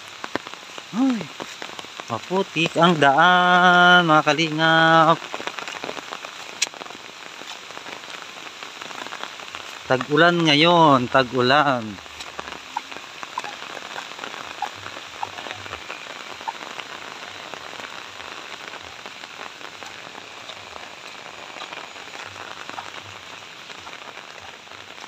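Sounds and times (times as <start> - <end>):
steady rain falling: 0.0 - 25.0.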